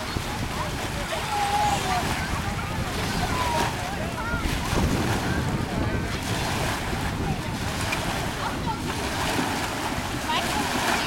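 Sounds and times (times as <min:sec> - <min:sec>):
small waves breaking on shore: 0:00.0 - 0:11.0
wind rumbling on microphone: 0:00.0 - 0:11.0.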